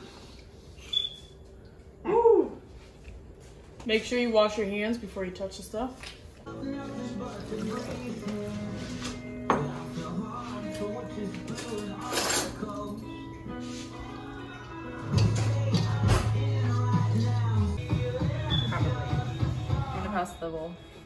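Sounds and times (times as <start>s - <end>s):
background music with bass line: 6.5s - 20.2s.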